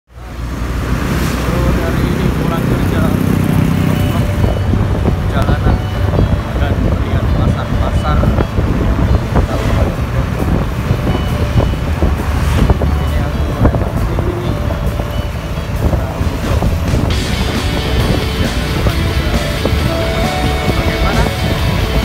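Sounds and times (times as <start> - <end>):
music playing: 0.2 - 22.0
wind buffeting microphone: 0.7 - 22.0
motorcycle engine running: 1.2 - 22.0.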